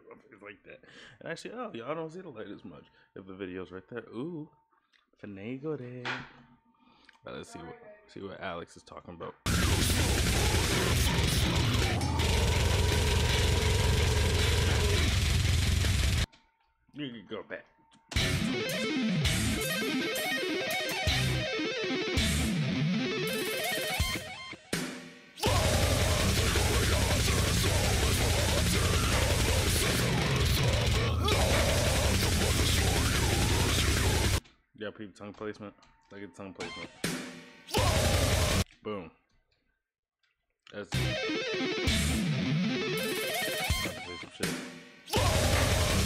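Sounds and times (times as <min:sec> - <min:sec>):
harsh growled vocal: 0:09.5 - 0:15.8, 0:25.4 - 0:34.4, 0:37.7 - 0:38.6, 0:45.1 - 0:46.0
distorted guitars: 0:09.5 - 0:16.3, 0:18.1 - 0:34.4, 0:36.6 - 0:38.6, 0:40.9 - 0:46.0
rapid drumming: 0:09.5 - 0:16.3, 0:25.4 - 0:34.4.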